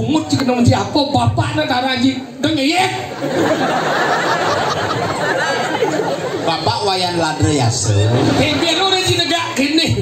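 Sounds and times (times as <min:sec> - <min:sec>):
crowd chatter: 0:03.0 - 0:10.0.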